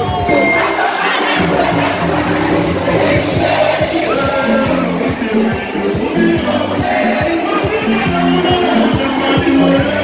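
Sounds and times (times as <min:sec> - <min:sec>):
crowd singing and cheering: 0:00.0 - 0:10.0
live band with drums and guitar: 0:00.0 - 0:10.0.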